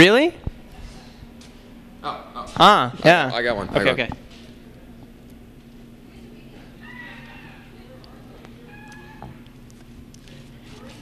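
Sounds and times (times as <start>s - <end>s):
steady low hum: 0.0s - 11.0s
faint distant voices: 5.8s - 9.6s.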